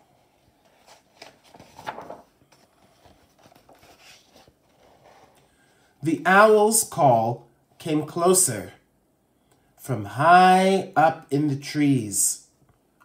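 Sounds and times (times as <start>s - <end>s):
book page turning: 0.2s - 5.4s.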